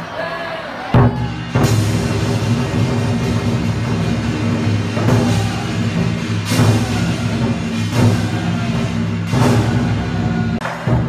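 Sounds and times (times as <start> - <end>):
large drum beaten: 1.0 - 11.0
hand cymbals clashing: 1.3 - 11.0.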